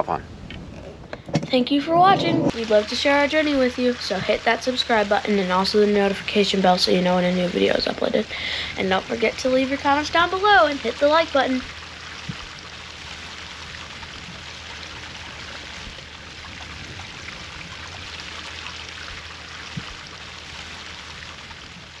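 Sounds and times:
small knocks: 1.1s - 2.5s.

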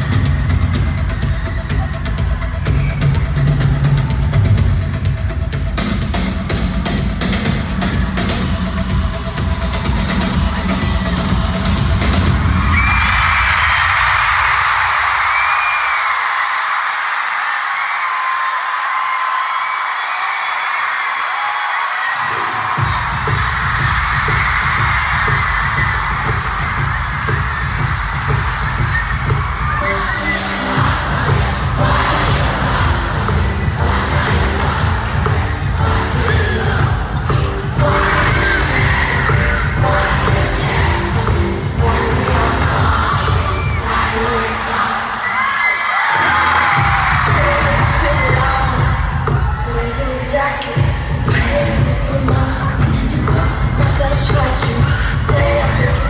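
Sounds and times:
crowd cheering: 0.0s - 5.1s, 7.4s - 56.0s
concert music with drums and bass: 0.0s - 16.3s, 22.2s - 56.0s.

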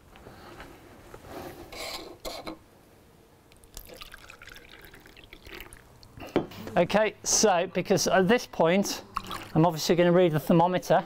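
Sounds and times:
water trickling into beakers: 3.6s - 6.2s, 9.0s - 9.7s.

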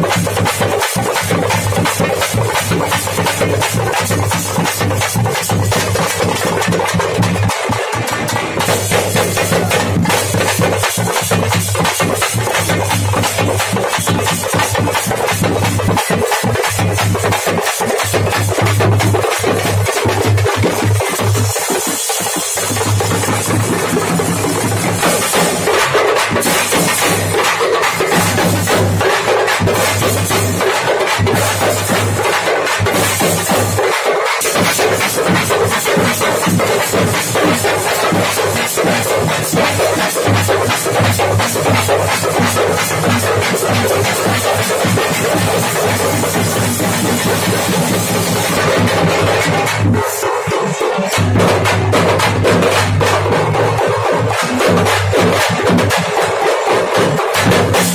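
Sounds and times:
fast frame drum drumming: 0.0s - 57.9s.

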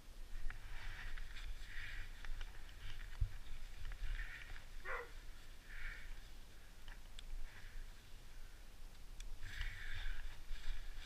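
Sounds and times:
close breathing: 0.4s - 8.8s, 9.4s - 11.0s.

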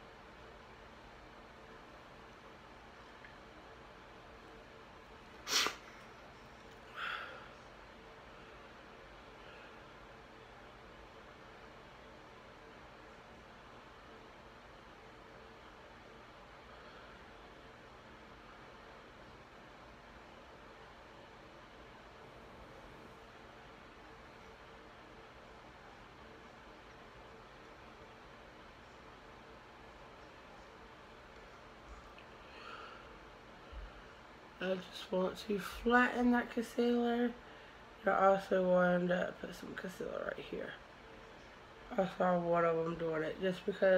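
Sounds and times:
air conditioner hiss: 0.0s - 43.9s.

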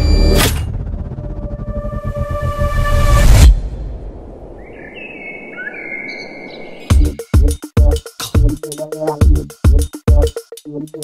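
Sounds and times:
low rumble: 0.0s - 5.5s
heavy electronic drum beat: 6.9s - 11.0s.

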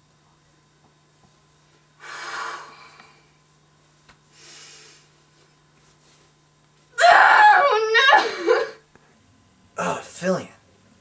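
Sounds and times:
woman sobbing: 7.4s - 8.8s.

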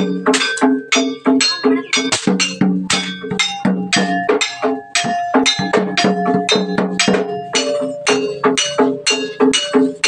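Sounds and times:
gamelan gong-chimes and percussion: 0.0s - 10.0s.

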